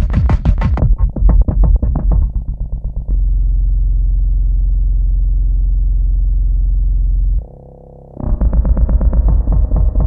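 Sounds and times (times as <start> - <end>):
low synthesizer drone: 1.8 - 10.0.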